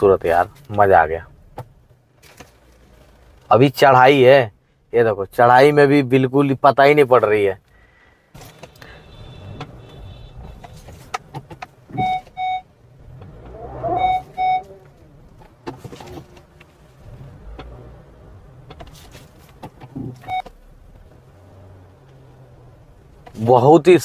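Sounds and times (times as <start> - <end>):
car engine hum: 0.0 - 24.0
road noise: 0.0 - 24.0
car horn beeping: 8.4 - 11.1, 11.9 - 12.7, 13.8 - 14.8.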